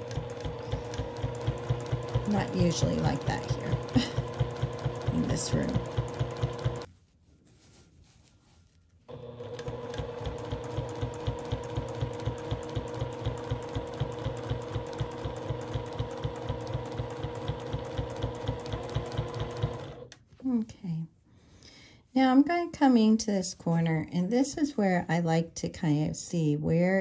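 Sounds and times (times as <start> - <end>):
sewing machine stitching: 0.0 - 6.9, 9.1 - 20.1.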